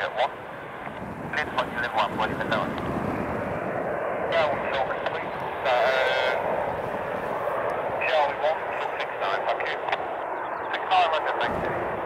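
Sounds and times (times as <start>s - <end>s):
garbled radio transmission: 0.0s - 2.9s, 4.3s - 12.0s
radio hiss: 1.3s - 3.0s, 4.3s - 11.9s.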